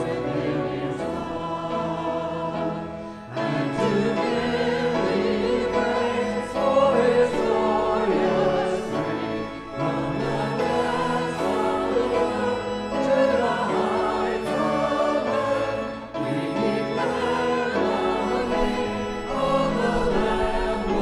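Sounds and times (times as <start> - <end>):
congregation singing a hymn: 0.0 - 21.0
instrumental accompaniment: 0.0 - 21.0.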